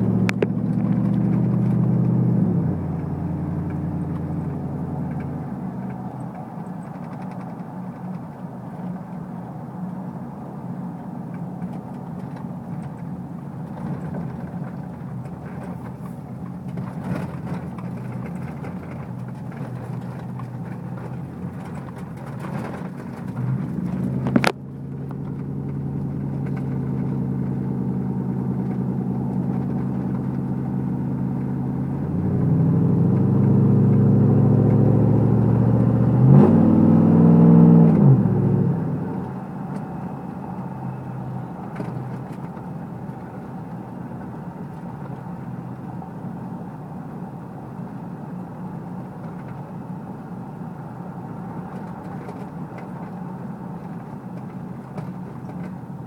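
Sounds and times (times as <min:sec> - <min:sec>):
car engine accelerating: 0:00.0 - 0:56.0
road noise: 0:00.0 - 0:56.0.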